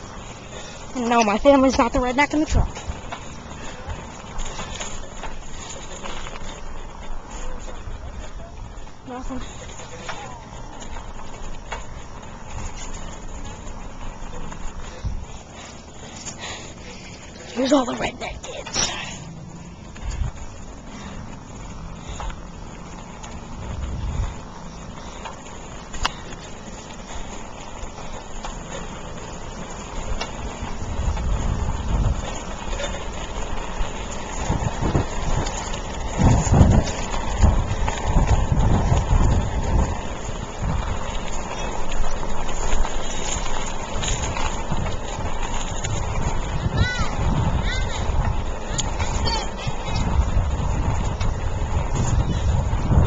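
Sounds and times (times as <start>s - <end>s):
bicycle tyre rumble: 0.0s - 53.0s
wind buffeting microphone: 0.0s - 53.0s.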